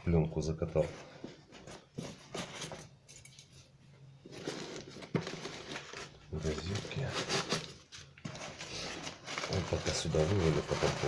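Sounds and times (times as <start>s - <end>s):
plastic film crinkling: 4.3s - 11.0s.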